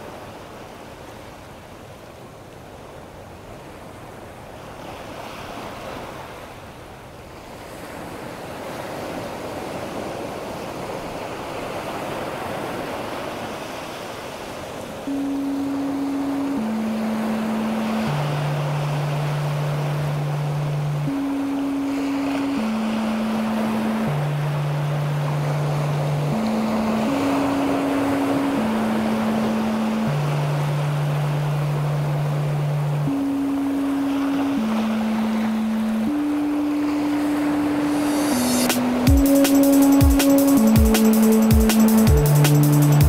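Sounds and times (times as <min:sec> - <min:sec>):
ocean wave wash of noise: 0:07.6 - 0:43.0
slow low synth line: 0:15.1 - 0:43.0.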